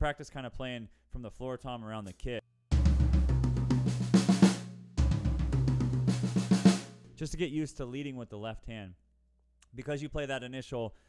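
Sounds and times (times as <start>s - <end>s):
drum fill around toms: 2.7s - 7.2s.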